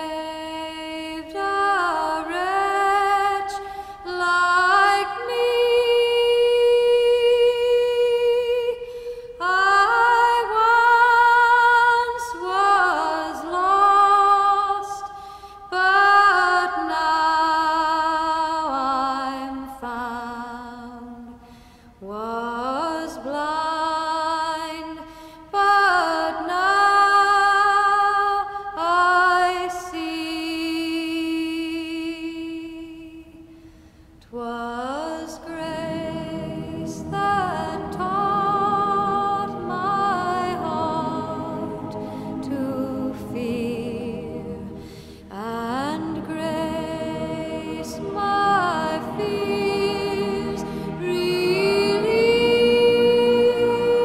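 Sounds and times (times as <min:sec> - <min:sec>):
woman singing a long note: 0:34.4 - 0:54.0.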